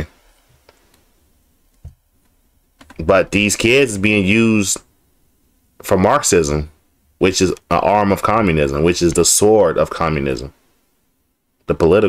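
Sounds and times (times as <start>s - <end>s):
person speaking: 2.8s - 4.9s, 5.8s - 10.6s, 11.6s - 12.0s.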